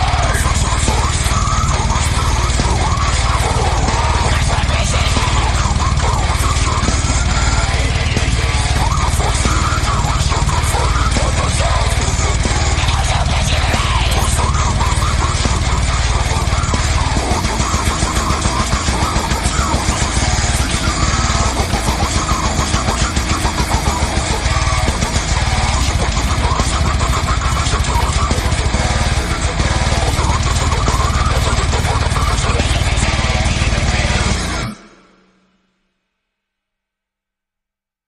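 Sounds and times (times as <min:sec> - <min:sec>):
metal band playing loudly: 0:00.0 - 0:35.4.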